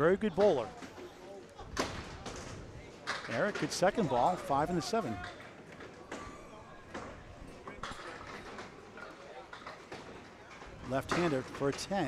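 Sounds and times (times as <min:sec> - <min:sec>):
clatter of bowling lanes: 0:00.0 - 0:12.0.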